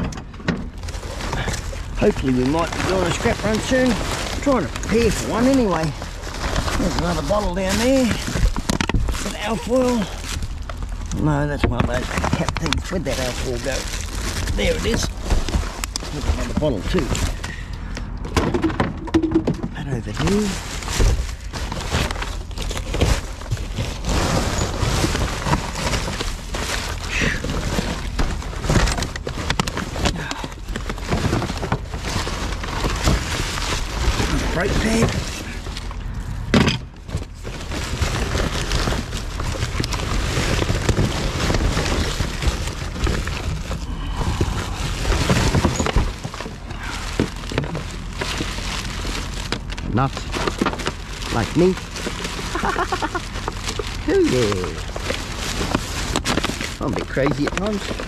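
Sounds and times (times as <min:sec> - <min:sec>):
boxes and bottles shifting: 0:00.0 - 0:58.0
plastic bags crinkling: 0:00.7 - 0:58.0.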